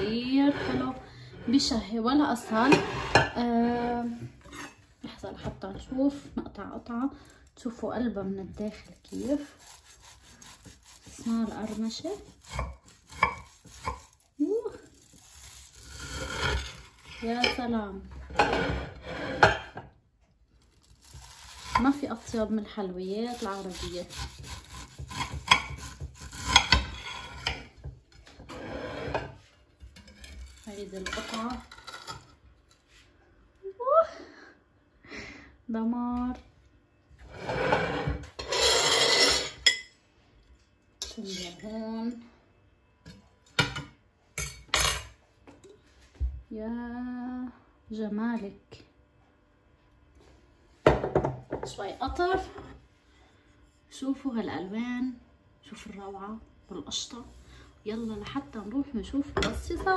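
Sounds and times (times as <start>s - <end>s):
knife crunching through crisp pastry: 8.5s - 17.3s, 20.6s - 22.5s, 23.2s - 27.4s.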